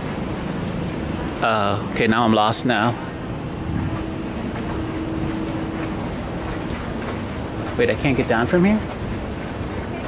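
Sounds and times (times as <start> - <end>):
low rumbling store hum: 0.0 - 10.0.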